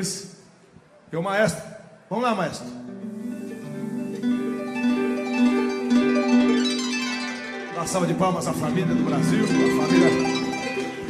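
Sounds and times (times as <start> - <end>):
live band playing slow instrumental: 2.8 - 11.0.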